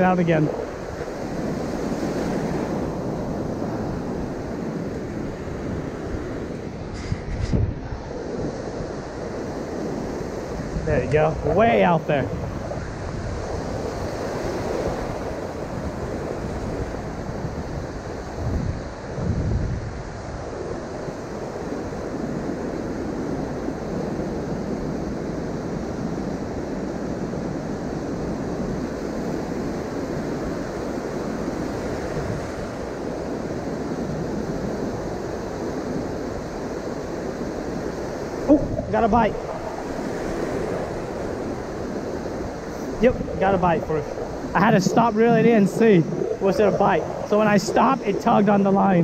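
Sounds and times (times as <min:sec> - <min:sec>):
surf washing up beach: 0:00.0 - 0:49.0
wind rumbling on microphone: 0:00.0 - 0:49.0.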